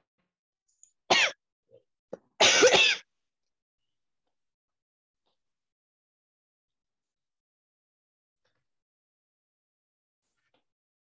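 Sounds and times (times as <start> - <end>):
person coughing: 1.1 - 1.4, 2.4 - 3.0.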